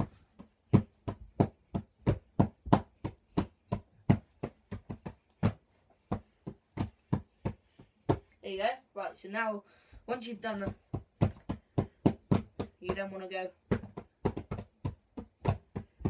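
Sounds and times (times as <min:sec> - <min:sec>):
drumsticks beating on pillows: 0:00.0 - 0:08.4, 0:10.0 - 0:16.0.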